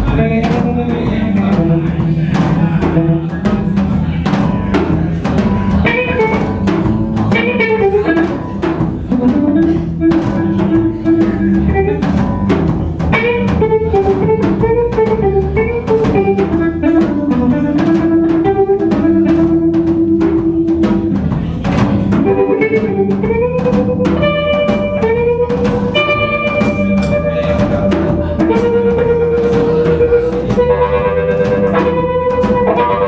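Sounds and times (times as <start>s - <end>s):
drum kit: 0.0s - 33.0s
electric bass: 0.0s - 33.0s
electric guitar lead lines: 0.0s - 33.0s.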